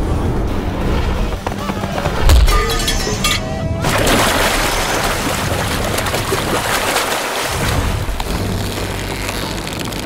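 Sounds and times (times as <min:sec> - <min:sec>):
action film music: 0:00.0 - 0:10.0.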